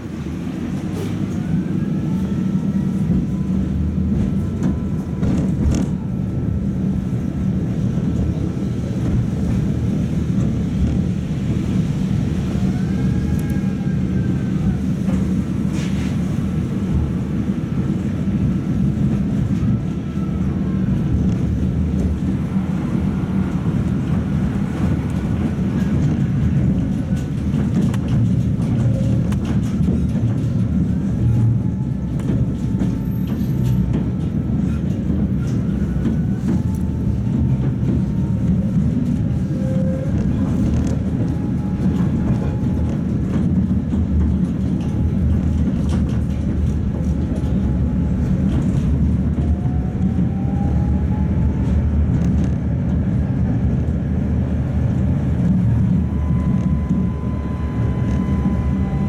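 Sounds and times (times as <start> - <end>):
tram wheels rumbling on rails: 0.0 - 59.0
faint gliding whines: 56.0 - 59.0.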